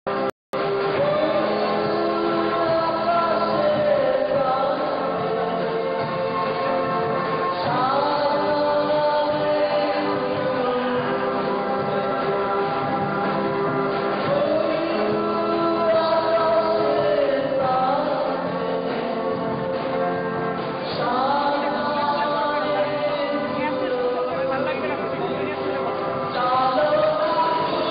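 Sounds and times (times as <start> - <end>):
musical accompaniment: 0.1 - 27.9
group of voices singing: 0.8 - 20.2, 20.8 - 27.9.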